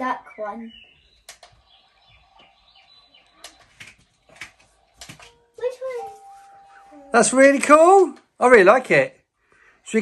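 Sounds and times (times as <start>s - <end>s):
recorded birdsong chirps: 0.0s - 8.4s.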